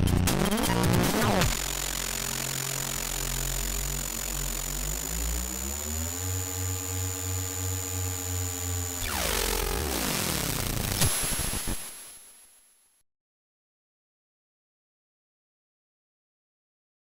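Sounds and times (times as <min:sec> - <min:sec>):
buzzy chiptune tones: 0:00.0 - 0:11.9
falling sweep with hiss: 0:10.9 - 0:12.5.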